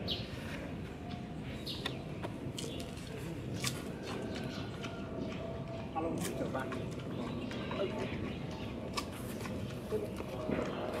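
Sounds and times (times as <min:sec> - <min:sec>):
sharp bamboo crunching cracks: 0:02.5 - 0:04.5.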